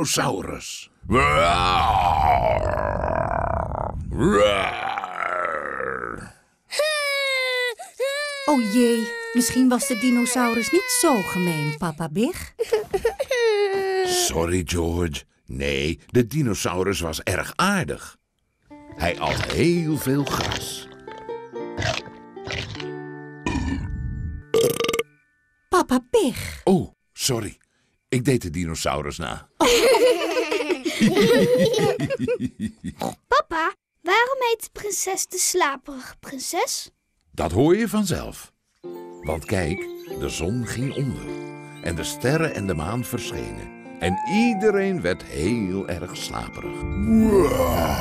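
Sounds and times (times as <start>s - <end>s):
man imitating dinosaur roar: 1.0s - 6.4s, 47.0s - 48.0s.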